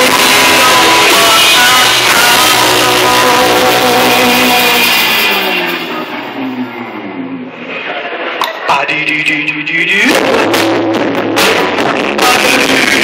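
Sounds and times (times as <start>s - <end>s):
acoustic guitars: 0.0s - 8.8s.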